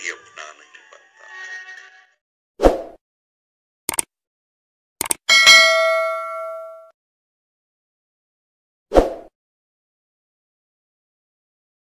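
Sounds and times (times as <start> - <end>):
bright bell ding: 5.3 - 6.9.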